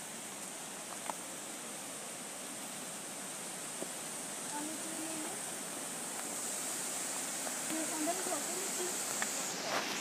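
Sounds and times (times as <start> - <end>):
waterfall and river rushing: 0.0 - 10.0
faint ticks: 9.0 - 9.4.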